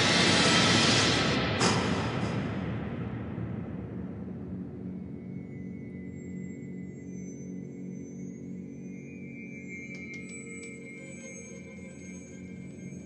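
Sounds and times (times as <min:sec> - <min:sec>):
low pulsing drone: 0:00.0 - 0:13.0
ominous horror score: 0:00.0 - 0:13.0.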